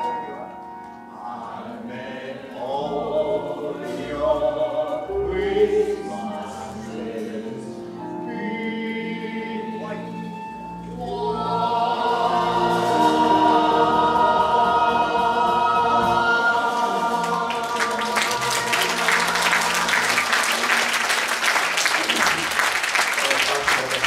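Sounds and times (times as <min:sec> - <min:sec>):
voices and instruments holding chord: 0:00.0 - 0:24.0
audience applause: 0:16.7 - 0:24.0.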